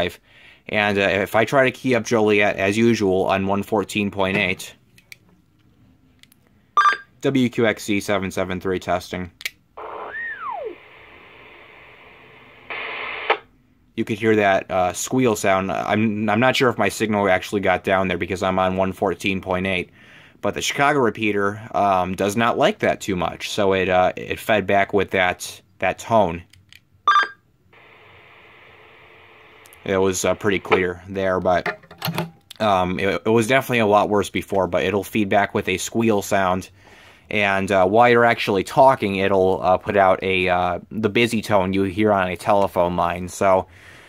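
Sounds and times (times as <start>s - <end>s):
radio static hiss: 9.8s - 13.5s, 27.8s - 31.1s.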